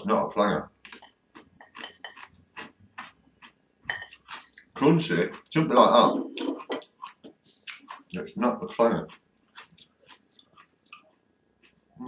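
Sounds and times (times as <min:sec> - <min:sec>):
person chewing food: 0:00.8 - 0:12.0.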